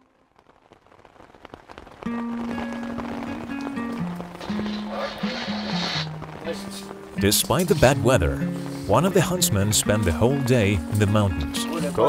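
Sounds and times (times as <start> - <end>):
raindrop clicks: 0.0 - 8.7
rain falling: 0.0 - 12.0
slow music of long held notes: 2.0 - 12.0.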